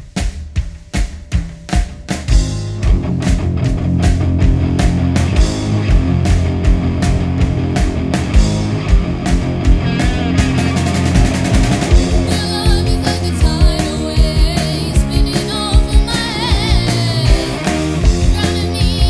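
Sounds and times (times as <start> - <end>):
drum kit beat: 0.0 - 19.0
rock band playing: 0.0 - 19.0.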